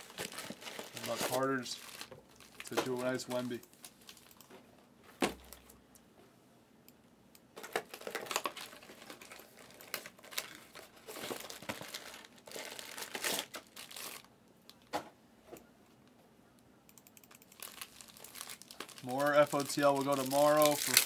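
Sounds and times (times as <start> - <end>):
foil wrappers crinkling: 0.0 - 4.4, 7.6 - 14.3, 17.5 - 21.0.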